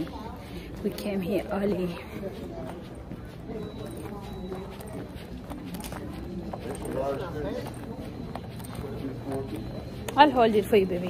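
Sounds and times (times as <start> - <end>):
indistinct talking: 0.0 - 11.0.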